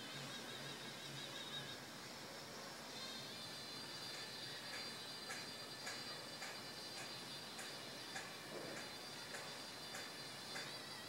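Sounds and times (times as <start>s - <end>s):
steady low hiss: 0.0s - 11.0s
faint regular ticking: 2.9s - 11.0s.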